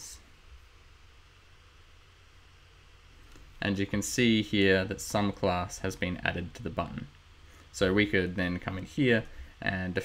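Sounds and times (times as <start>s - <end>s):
faint microphone hiss: 0.0s - 10.0s
low room hum: 0.0s - 10.0s.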